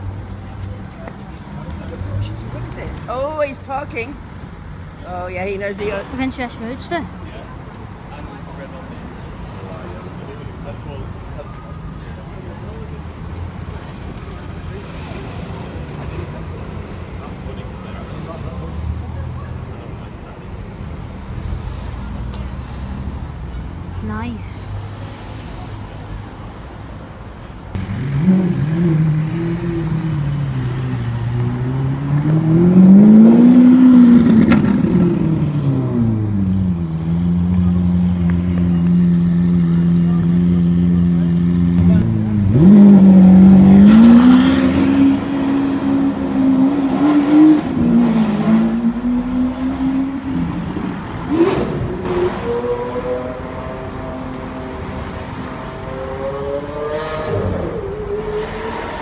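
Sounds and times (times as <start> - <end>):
car engine revving: 27.7 - 59.0.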